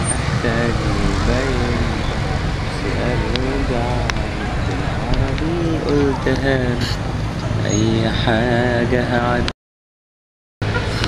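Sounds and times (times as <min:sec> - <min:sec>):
car driving away: 0:00.0 - 0:09.5
low traffic rumble: 0:00.0 - 0:09.5
person's voice: 0:00.4 - 0:07.0, 0:07.6 - 0:09.5.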